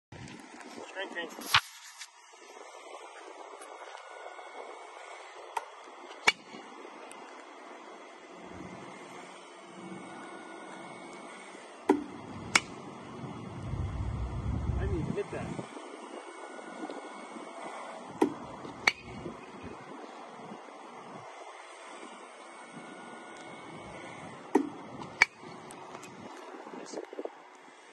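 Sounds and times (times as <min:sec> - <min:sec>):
low rumble: 0:13.2 - 0:15.6
bat cracking ball: 0:18.2 - 0:19.2.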